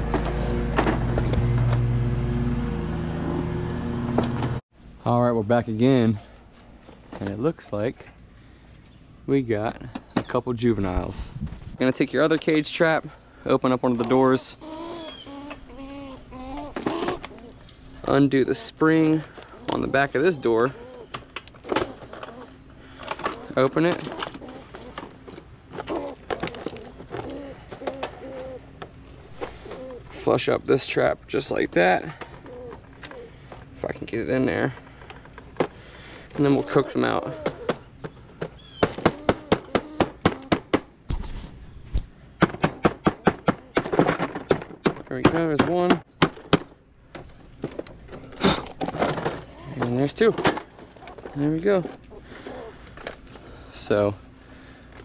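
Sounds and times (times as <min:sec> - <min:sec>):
squirrels scrambling in cage: 0:14.0 - 0:30.4
dove cooing: 0:14.2 - 0:30.6, 0:31.6 - 0:35.0, 0:35.9 - 0:40.8, 0:50.8 - 0:54.9.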